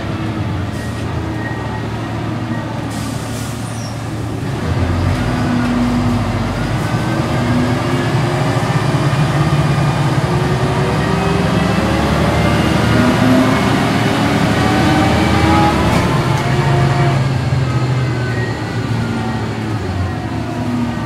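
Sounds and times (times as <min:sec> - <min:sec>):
bus diesel engine accelerating: 0:00.0 - 0:21.0.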